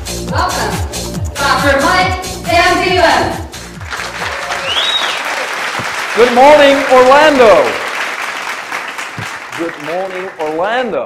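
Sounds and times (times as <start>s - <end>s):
upbeat music with kick drum: 0.0s - 5.0s
audience applauding: 3.8s - 11.0s.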